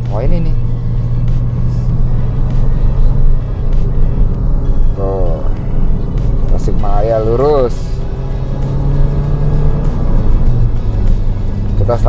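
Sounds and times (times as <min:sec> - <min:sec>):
background music: 0:00.0 - 0:12.0
car engine and tyres rumbling: 0:00.0 - 0:12.0.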